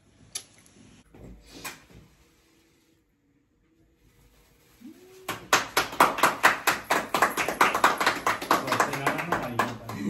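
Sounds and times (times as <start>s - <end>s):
people clapping: 5.2s - 10.0s.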